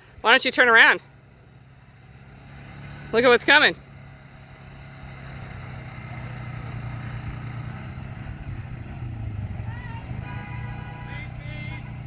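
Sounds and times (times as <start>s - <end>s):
vehicle engines droning: 0.0s - 12.0s.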